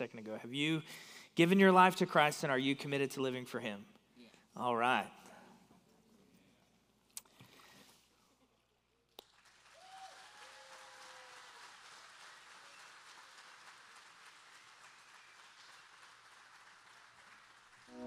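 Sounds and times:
faint applause: 0:09.3 - 0:18.0.

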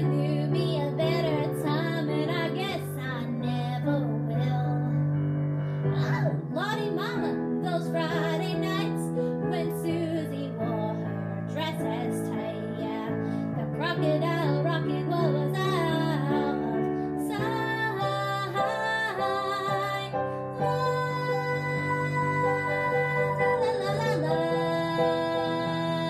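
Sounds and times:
piano chords: 0:00.0 - 0:26.0.

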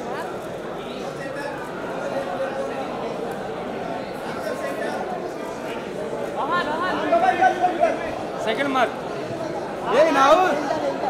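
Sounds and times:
voices calling out and chattering: 0:00.0 - 0:11.0.

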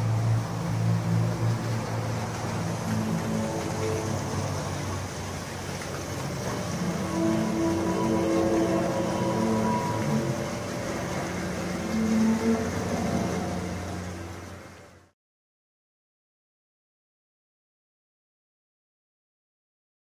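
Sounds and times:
low horn-like drone: 0:00.0 - 0:15.1.

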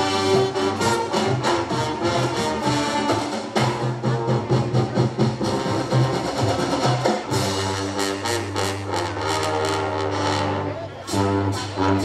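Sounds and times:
held brass chords: 0:00.0 - 0:06.7, 0:07.3 - 0:12.0
marching band drum strokes: 0:00.0 - 0:12.0.

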